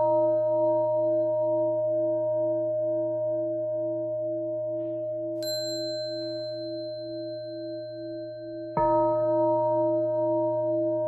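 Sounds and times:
singing bowl drone: 0:00.0 - 0:11.0
small bell ringing: 0:05.4 - 0:08.8.

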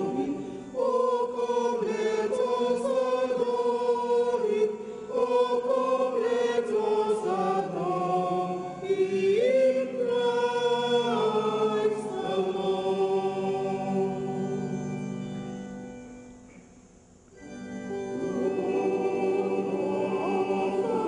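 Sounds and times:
choir singing a hymn: 0:00.0 - 0:15.7, 0:17.4 - 0:21.0.

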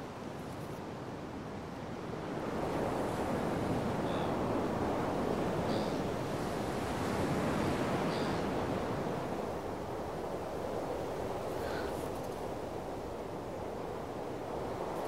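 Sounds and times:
ocean surf washing onto beach: 0:01.4 - 0:15.0.

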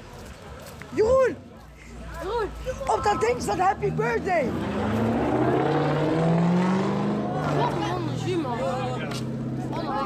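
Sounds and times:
large vehicle engine revving: 0:03.4 - 0:10.0.

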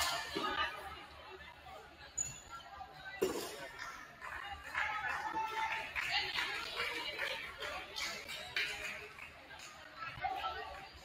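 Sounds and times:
indistinct chatter: 0:00.0 - 0:11.0.

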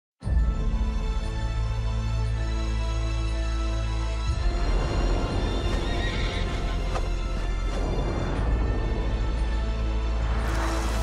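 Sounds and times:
trailer music with deep rumble: 0:00.2 - 0:11.0.

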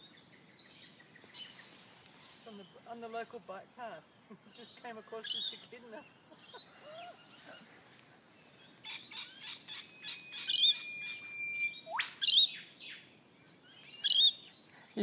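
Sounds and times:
birds chirping and calling: 0:00.0 - 0:15.0
whistle ending in whip-crack: 0:11.8 - 0:12.4.

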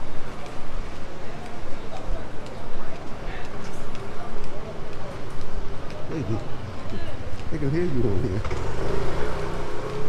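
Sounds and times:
scooter engine passing by: 0:08.4 - 0:10.0.

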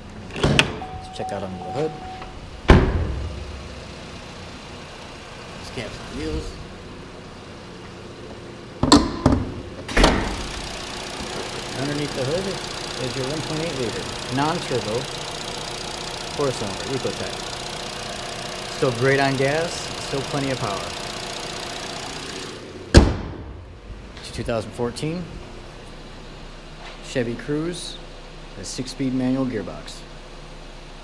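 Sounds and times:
car engine idling: 0:00.0 - 0:31.0
car hood shutting thump: 0:02.7 - 0:03.6, 0:08.8 - 0:10.4, 0:22.9 - 0:23.6
hood latch click: 0:08.8 - 0:10.3.

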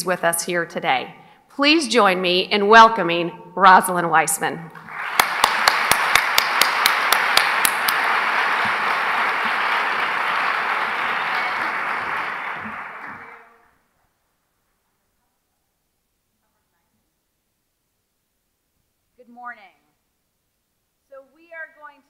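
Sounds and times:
close hand claps: 0:04.8 - 0:13.5
audience applauding: 0:04.8 - 0:13.7.

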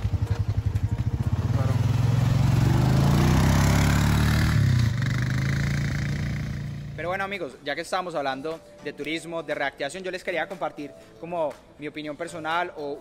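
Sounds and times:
quad bike engine revving: 0:00.0 - 0:07.0.

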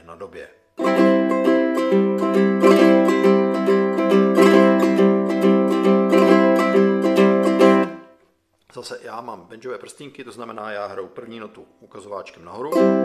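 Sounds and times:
ukulele strumming chords: 0:00.8 - 0:08.2, 0:12.6 - 0:13.0.

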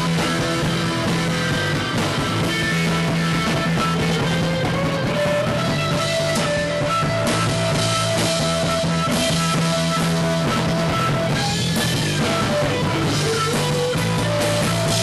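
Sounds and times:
drum kit: 0:00.0 - 0:15.0
electric guitar: 0:00.0 - 0:15.0.

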